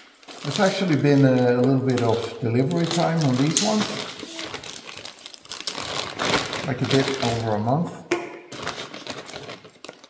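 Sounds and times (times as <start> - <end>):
plastic bag crinkling: 0.0 - 7.8, 8.5 - 10.0.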